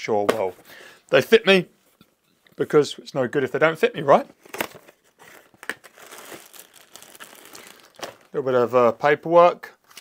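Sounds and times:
paper and cardboard rustling: 4.4s - 8.3s.

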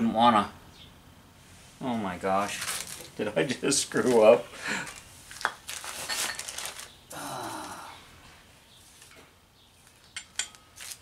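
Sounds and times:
parts rustling and scraping on metal: 2.4s - 6.9s, 8.8s - 11.0s.

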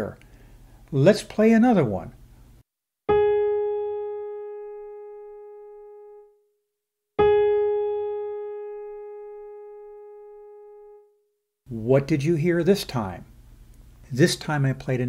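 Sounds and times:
piano note ringing: 3.1s - 6.4s, 7.2s - 11.1s.

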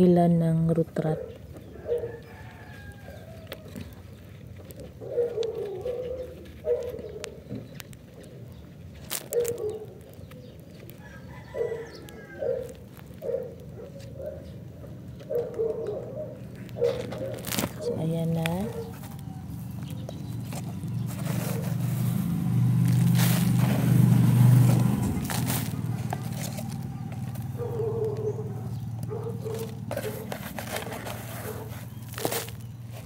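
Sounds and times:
sharp crackles: 2.6s - 33.0s.

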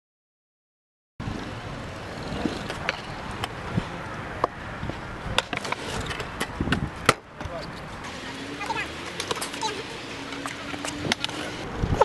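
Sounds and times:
scooter wheels rolling on concrete: 1.2s - 12.0s.

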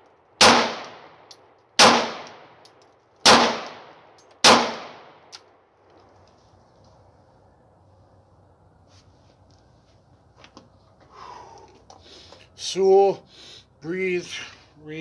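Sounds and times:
pistol shots echoing: 0.4s - 2.5s, 3.2s - 5.4s.

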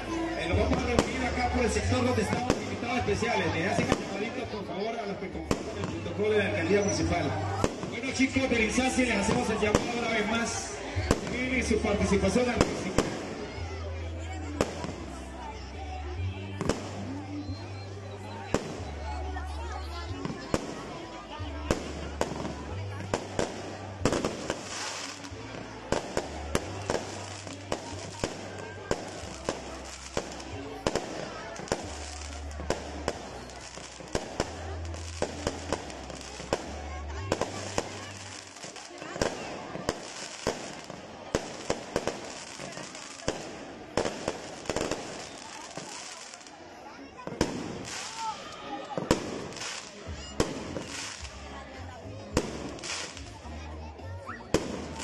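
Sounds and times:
fireworks bangs and crackles: 0.0s - 55.0s.

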